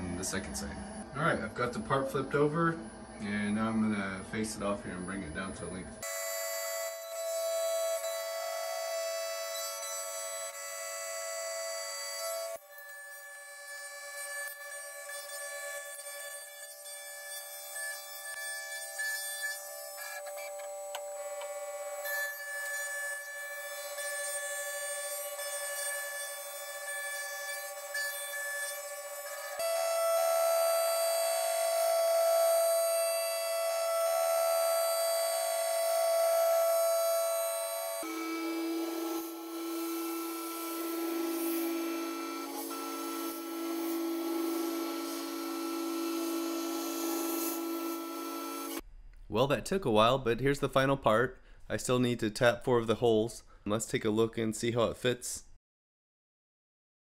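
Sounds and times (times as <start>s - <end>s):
sped-up mill cutting whine: 0.0s - 48.8s.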